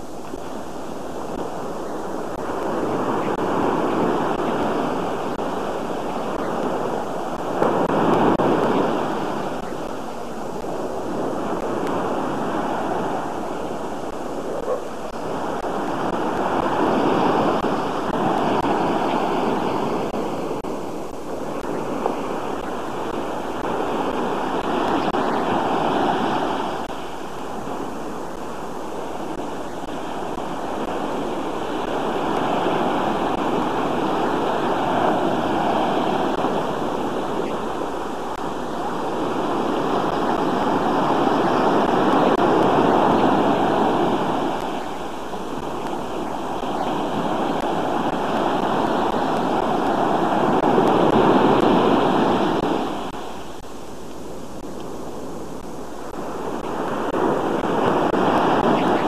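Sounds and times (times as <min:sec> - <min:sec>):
surf washing onto beach: 0:00.0 - 0:59.0.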